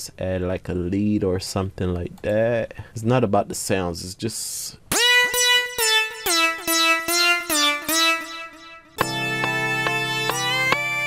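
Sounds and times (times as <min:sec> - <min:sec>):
synth lead repeated notes: 0:04.9 - 0:11.0.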